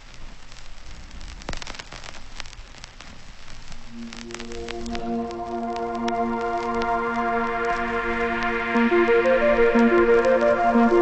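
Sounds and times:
crackling raindrops: 0.0 - 11.0
rain hissing: 0.0 - 11.0
soft synth chords: 3.9 - 11.0.

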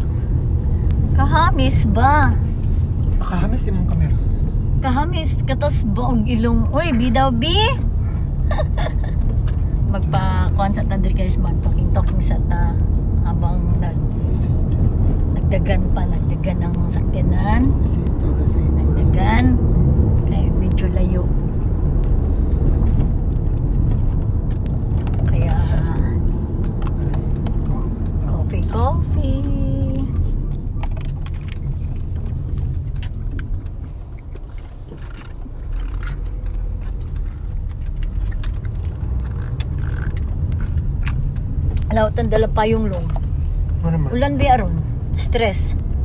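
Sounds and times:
car road noise rumble: 0.0 - 46.0.

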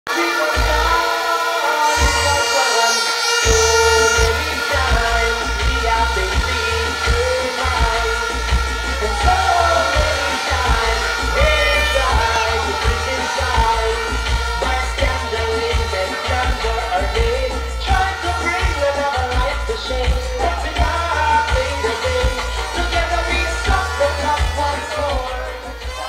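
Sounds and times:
person singing: 0.1 - 26.0
bass beat: 0.6 - 1.0, 2.0 - 2.6, 3.3 - 26.0.

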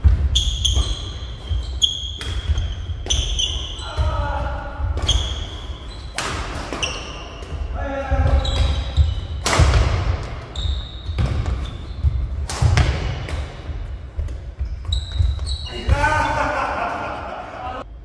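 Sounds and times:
shoes squeaking on floor: 0.0 - 16.4
rackets striking shuttlecock: 0.4 - 3.8, 8.3 - 15.3.

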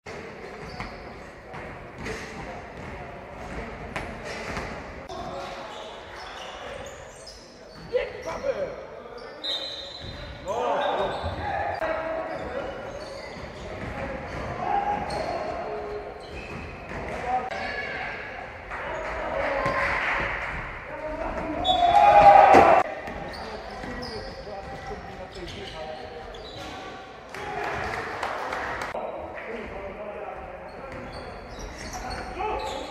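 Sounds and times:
players' voices echoing: 0.1 - 32.9.

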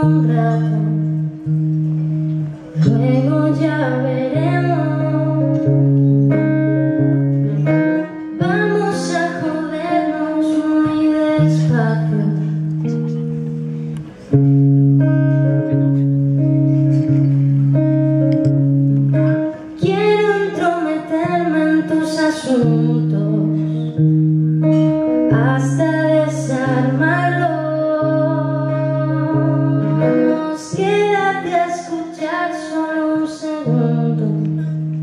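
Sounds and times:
woman singing: 0.0 - 1.5, 2.7 - 5.9, 8.0 - 12.7, 19.8 - 35.0
acoustic guitar chords: 0.0 - 35.0.

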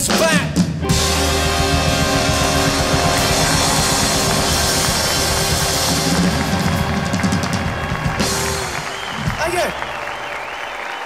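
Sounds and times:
fast drum strokes: 0.0 - 9.8
big band holding a chord: 0.8 - 10.5.

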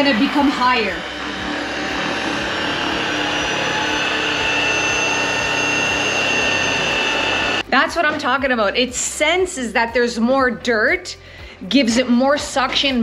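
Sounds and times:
vacuum cleaner motor whine: 0.0 - 7.7.

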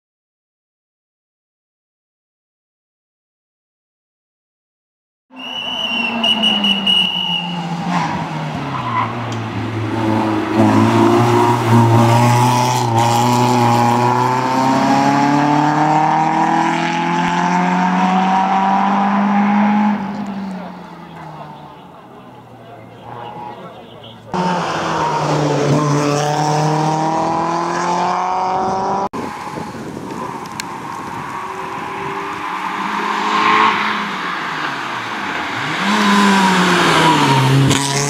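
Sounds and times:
high-pitched squeal: 5.3 - 9.2
car engine accelerating: 5.5 - 38.0.

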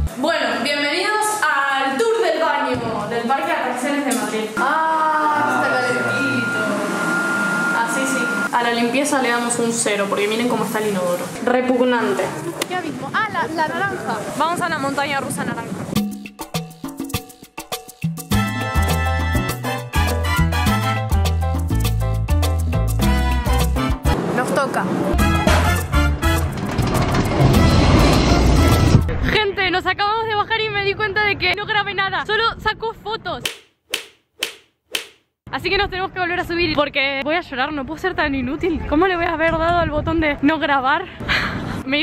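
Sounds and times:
roller coaster rumbling rush: 9.4 - 15.9, 24.2 - 29.4
music: 16.0 - 24.2, 25.1 - 29.1.

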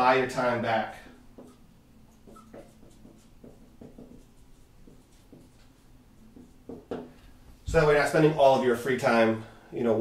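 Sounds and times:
marker writing on a whiteboard: 0.4 - 7.3
marker squeak: 2.2 - 3.3.

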